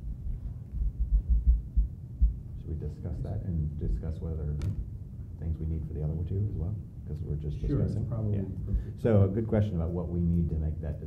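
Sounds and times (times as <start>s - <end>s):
soft low thumps: 0.0s - 5.0s, 8.6s - 9.0s
faint room hum: 0.0s - 11.0s.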